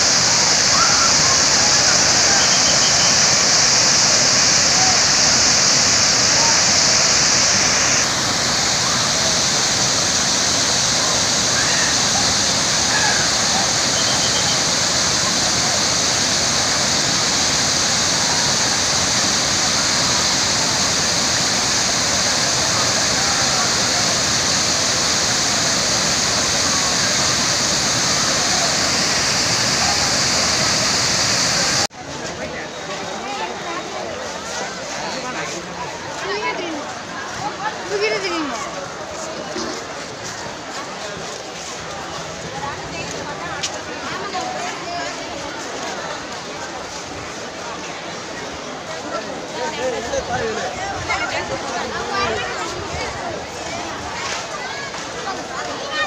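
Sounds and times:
waterfall rushing: 0:00.0 - 0:31.9
faint crowd voices: 0:00.0 - 0:56.0.

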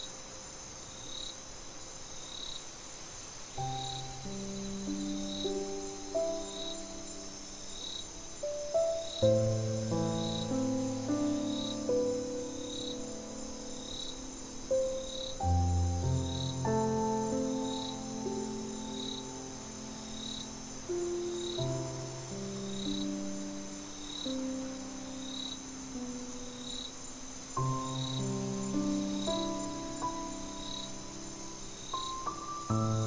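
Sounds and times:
crickets chirping: 0:00.0 - 0:33.0
slow calm piano chords: 0:03.6 - 0:33.0.

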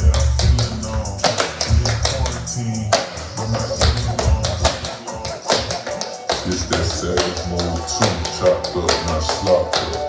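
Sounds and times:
slowed hip-hop track: 0:00.0 - 0:10.0
tap shoes on laminate floor: 0:05.5 - 0:10.0.

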